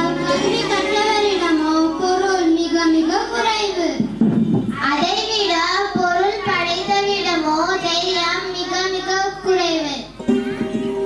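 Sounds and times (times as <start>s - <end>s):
girl singing into microphone: 0.0s - 10.2s.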